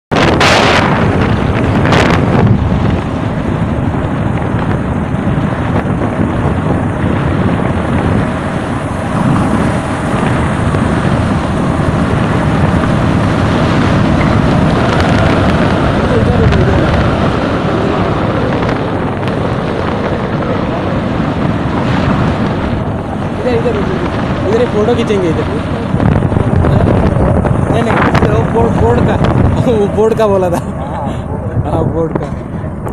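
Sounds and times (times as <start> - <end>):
vehicle engine and tyre noise: 0.1 - 32.9
wind buffeting microphone: 0.1 - 32.9.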